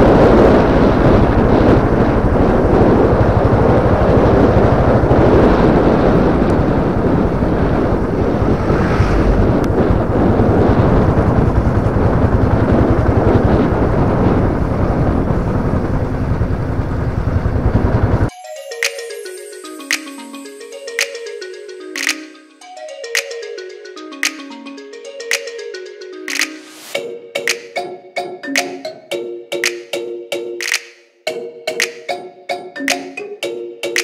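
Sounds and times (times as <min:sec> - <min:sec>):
wind buffeting microphone: 0:00.0 - 0:18.3
motorcycle engine running: 0:09.4 - 0:18.3.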